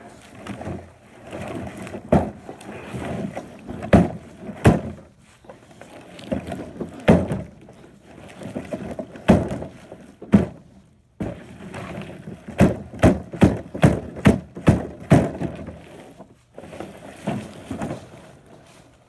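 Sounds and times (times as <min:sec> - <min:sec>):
hard knocks and thumps: 0:03.7 - 0:05.1, 0:06.3 - 0:07.5, 0:09.2 - 0:10.6, 0:12.5 - 0:15.7.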